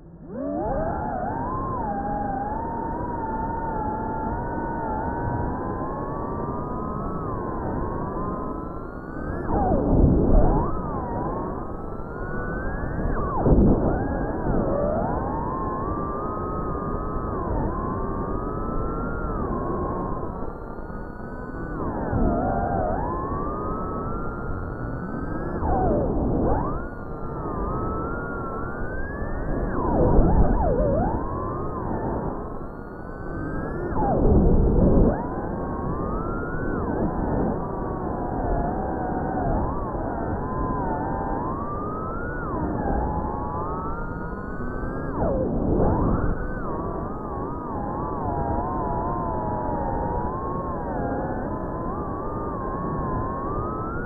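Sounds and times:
drone motors whining: 0:00.0 - 0:54.0.

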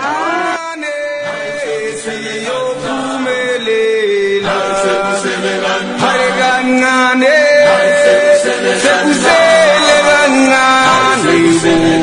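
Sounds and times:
voices singing chant-like song: 0:00.0 - 0:12.0.

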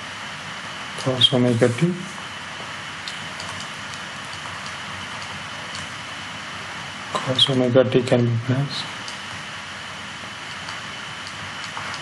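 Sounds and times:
microphone background hiss: 0:00.0 - 0:12.0.

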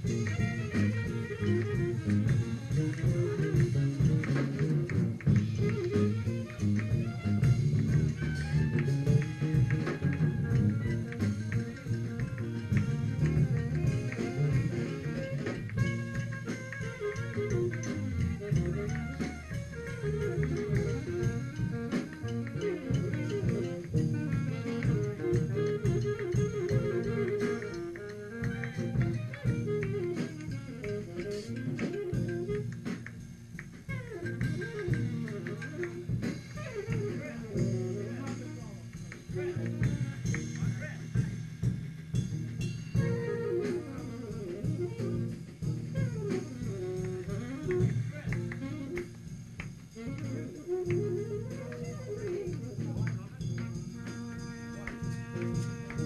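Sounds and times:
big band playing jazz-funk: 0:00.0 - 0:56.0
saxophones: 0:00.0 - 0:56.0.

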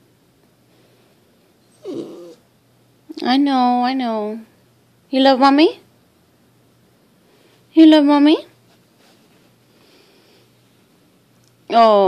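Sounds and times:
dog whining: 0:01.6 - 0:02.5.

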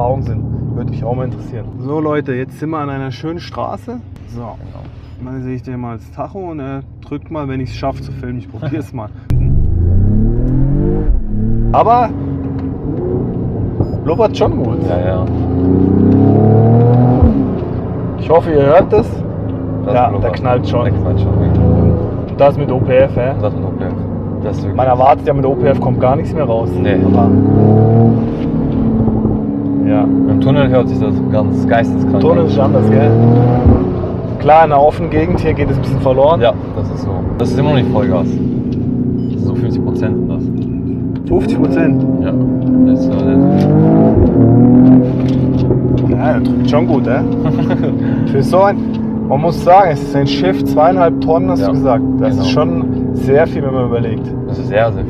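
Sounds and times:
exhaust bang: 0:09.3 - 0:12.3
car engine accelerating: 0:09.3 - 0:55.0.

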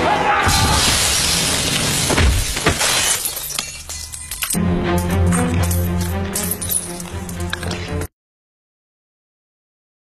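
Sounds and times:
body crashing onto concrete: 0:00.5 - 0:03.7
glass shattering: 0:00.5 - 0:04.6
glass shards clinking: 0:02.6 - 0:04.6, 0:05.6 - 0:07.8.

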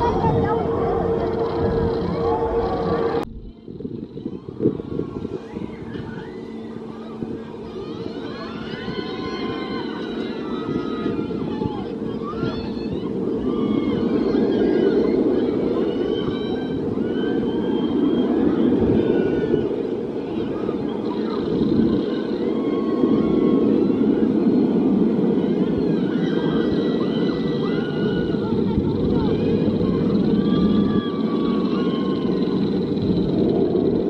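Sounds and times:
low rush of ride noise: 0:00.0 - 0:34.0
riders screaming and yelling: 0:00.0 - 0:34.0.

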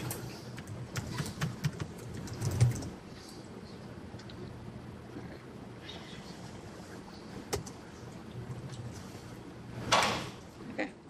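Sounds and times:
laptop keyboard typing: 0:00.0 - 0:03.0.

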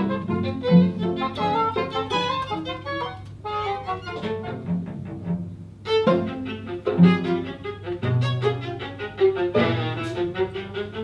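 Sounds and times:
chamber music on bowed strings: 0:00.0 - 0:11.0.

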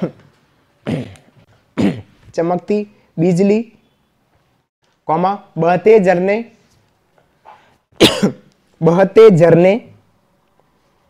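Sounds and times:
man coughing: 0:00.8 - 0:02.1, 0:08.0 - 0:08.5.

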